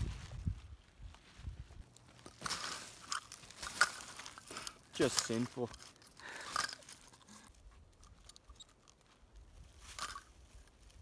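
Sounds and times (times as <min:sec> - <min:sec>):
crunching of bark and twigs: 0:00.1 - 0:11.0.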